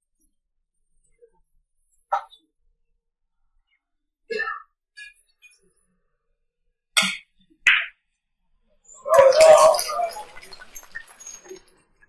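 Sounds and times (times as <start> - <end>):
spectators reacting vocally: 9.0 - 10.6
scattered clapping: 9.2 - 12.0.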